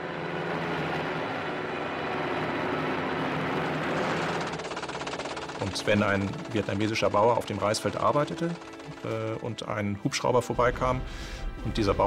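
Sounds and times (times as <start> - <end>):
helicopter turbine and rotor drone: 0.0 - 12.0.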